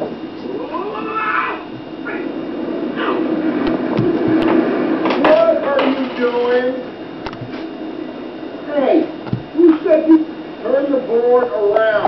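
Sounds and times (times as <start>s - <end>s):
guinea pig squealing: 0.7s - 2.2s.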